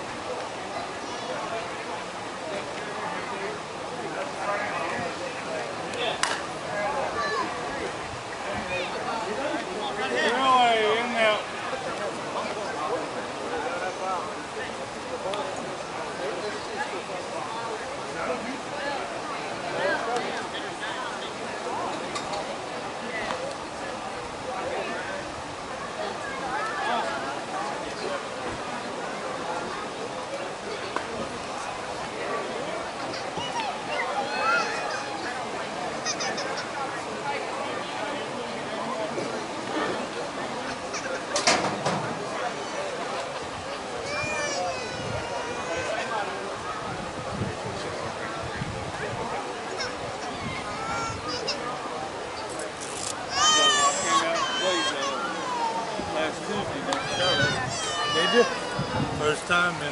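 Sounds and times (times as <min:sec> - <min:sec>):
people talking and calling out: 0:00.0 - 0:59.9.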